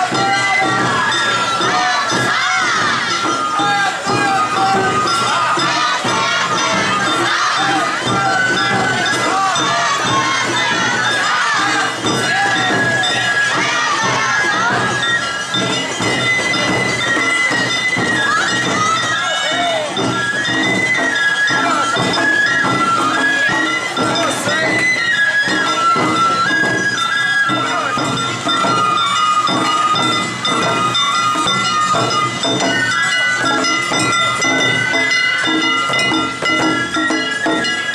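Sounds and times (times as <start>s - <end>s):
bamboo flute melody: 0.0s - 37.9s
drums beating: 0.0s - 37.9s
voices: 0.0s - 37.9s.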